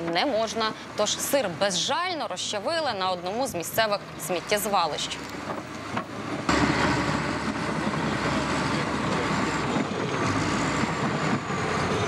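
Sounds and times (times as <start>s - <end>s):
bulldozer running on tracks: 0.0s - 12.0s.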